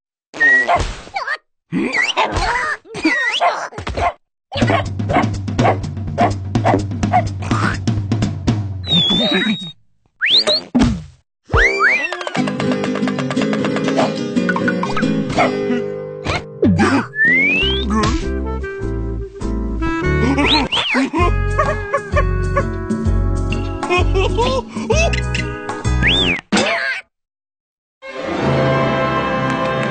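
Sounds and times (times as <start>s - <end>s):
cartoon dog barking: 3.3s - 7.8s
background music: 11.6s - 26.2s, 28.1s - 29.9s.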